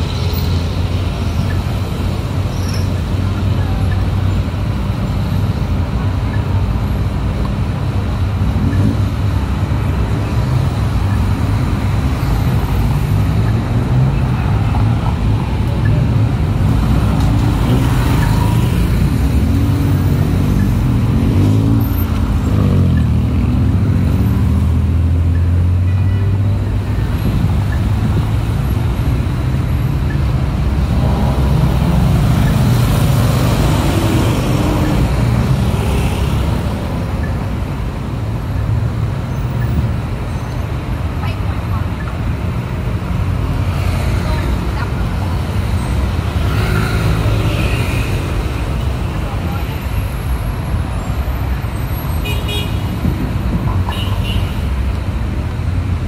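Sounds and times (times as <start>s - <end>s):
cars passing: 0.0s - 56.0s.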